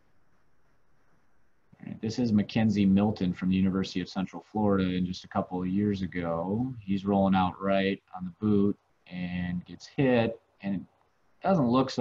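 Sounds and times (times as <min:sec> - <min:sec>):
faint background hiss: 0:00.0 - 0:12.0
man talking: 0:01.8 - 0:12.0.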